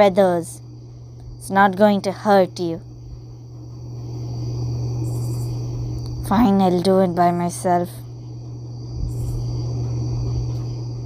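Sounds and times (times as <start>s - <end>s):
insects trilling: 0.0s - 11.0s
steady low hum: 0.0s - 11.0s
rapid high chirping: 5.0s - 5.9s, 9.0s - 9.7s.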